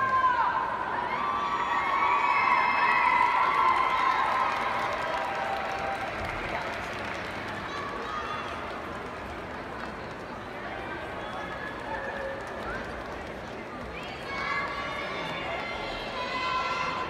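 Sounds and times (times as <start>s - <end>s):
murmur of voices: 0.0s - 17.0s.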